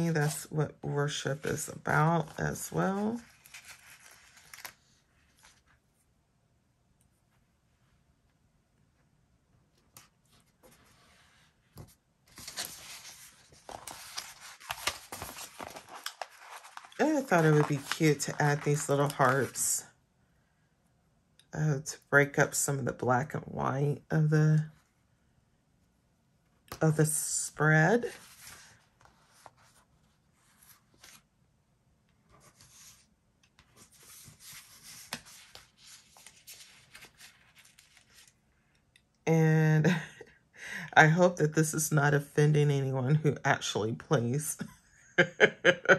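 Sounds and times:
paper rustling and crinkling: 0:01.1 - 0:05.8, 0:10.0 - 0:19.7, 0:32.3 - 0:38.4
paper rustling and tapping: 0:11.8 - 0:19.6.

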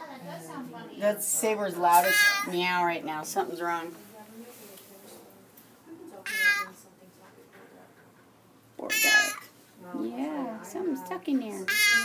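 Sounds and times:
cat meowing: 0:08.9 - 0:09.5.

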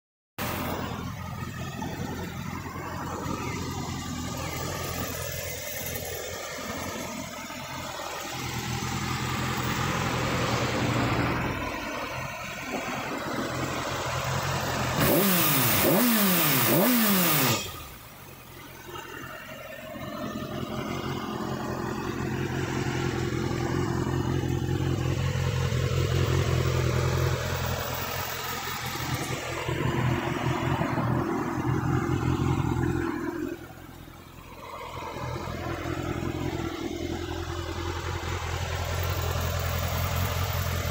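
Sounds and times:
motorcycle engine idling: 0:00.4 - 0:40.9.

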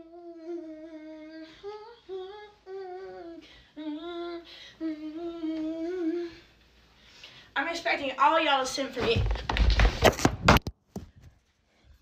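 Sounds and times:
person humming: 0:00.0 - 0:06.5.

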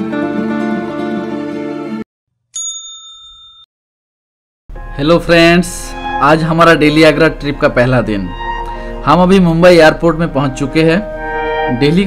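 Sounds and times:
bright bell-like ding: 0:02.6 - 0:03.7.

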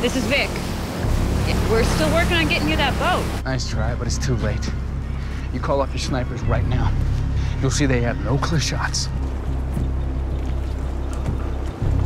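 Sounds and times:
boat engine rumbling: 0:00.0 - 0:12.0
water noise: 0:00.0 - 0:12.0
wind: 0:00.0 - 0:12.0.

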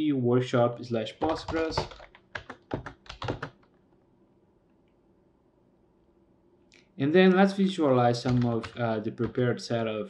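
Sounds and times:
computer keyboard keystrokes: 0:01.2 - 0:03.8, 0:08.2 - 0:09.4.

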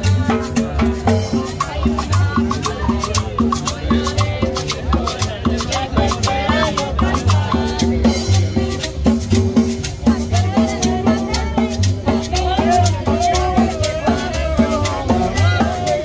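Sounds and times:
bass line: 0:00.0 - 0:16.0
drum beat: 0:00.0 - 0:16.0
quick ticking percussion: 0:00.0 - 0:16.0.

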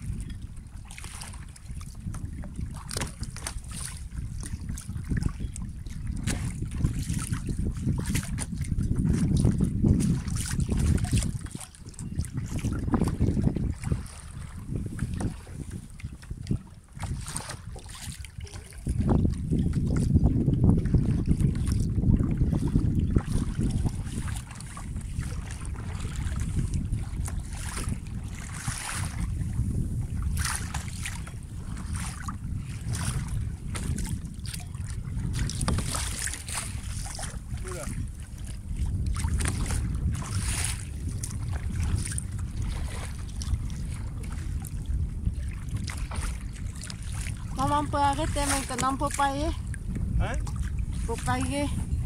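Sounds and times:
paddles splashing in water: 0:00.0 - 0:52.0
wind rumbling on microphone: 0:00.0 - 0:52.0.

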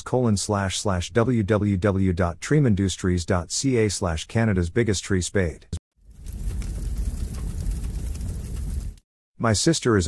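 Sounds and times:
low noise with light crackle: 0:06.0 - 0:09.0.

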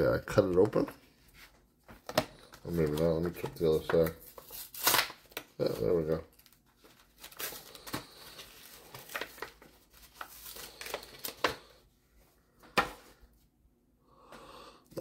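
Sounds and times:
plastic wrapper crinkling and tearing: 0:02.3 - 0:11.7.

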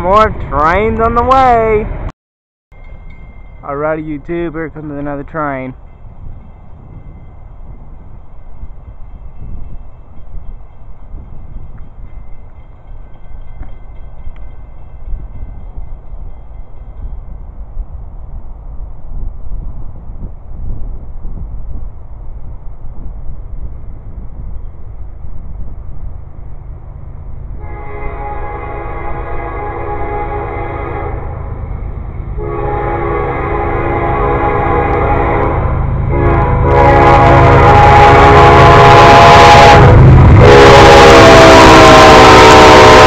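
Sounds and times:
train rumble: 0:00.0 - 0:02.1, 0:02.7 - 0:43.0
multi-note train horn: 0:27.6 - 0:31.6, 0:32.4 - 0:43.0.

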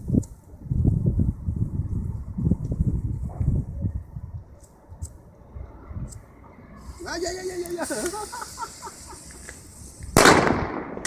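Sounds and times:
firework bang: 0:10.1 - 0:11.0.

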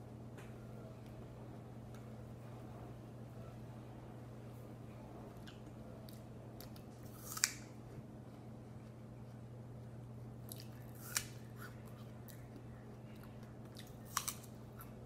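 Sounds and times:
low steady hum: 0:00.0 - 0:15.0
person biting and chewing apple: 0:05.4 - 0:08.1, 0:10.4 - 0:15.0.

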